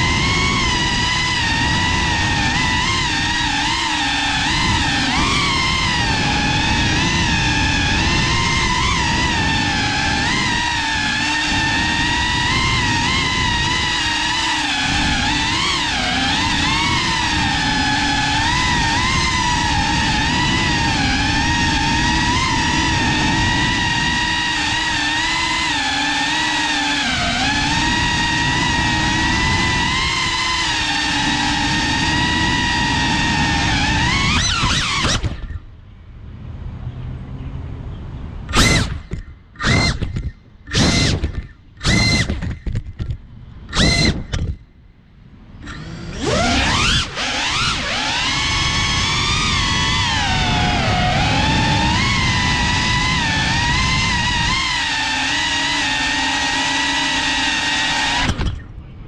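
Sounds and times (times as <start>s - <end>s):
drone motors whining: 0.0s - 35.8s, 38.4s - 59.0s.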